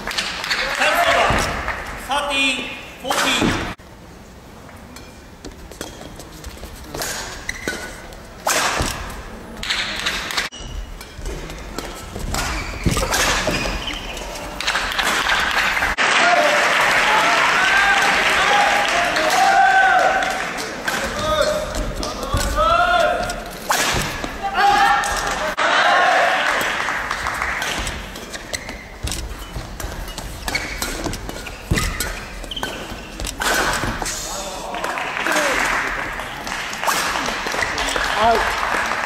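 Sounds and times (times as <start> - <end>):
racket hitting shuttlecock: 7.0 - 15.4, 20.6 - 25.4, 26.6 - 34.1
shoe squeals on court: 7.4 - 8.0, 12.3 - 14.4, 28.3 - 34.2.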